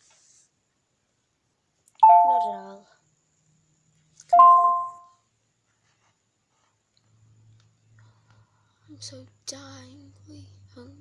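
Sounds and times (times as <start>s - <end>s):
two-note doorbell chime: 2.0s - 2.6s, 4.4s - 5.0s.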